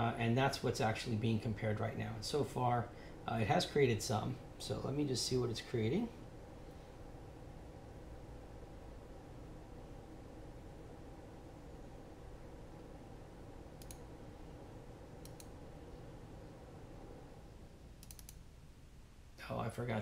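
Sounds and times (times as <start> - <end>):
low room hum: 0.0 - 20.0
computer mouse double-clicks: 13.8 - 14.0, 18.0 - 18.4.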